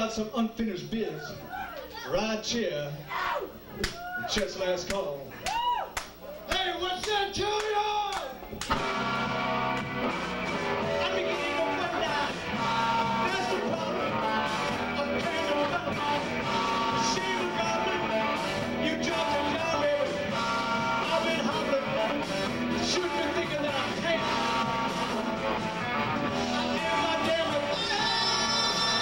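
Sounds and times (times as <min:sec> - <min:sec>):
bass guitar: 0:08.4 - 0:29.0
electric guitars: 0:08.4 - 0:29.0
drum kit: 0:08.6 - 0:29.0.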